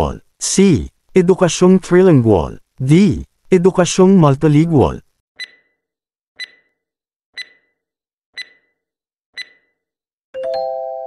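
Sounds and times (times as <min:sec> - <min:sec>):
short countdown ticks: 0:05.4 - 0:05.6, 0:06.4 - 0:06.7, 0:07.4 - 0:07.7, 0:08.4 - 0:08.7, 0:09.4 - 0:09.7.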